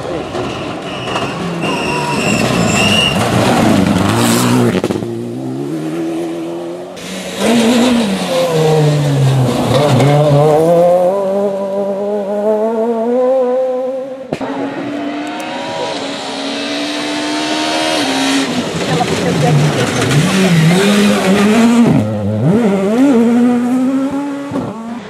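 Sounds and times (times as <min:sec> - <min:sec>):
rally car engine revving: 0:00.0 - 0:25.0.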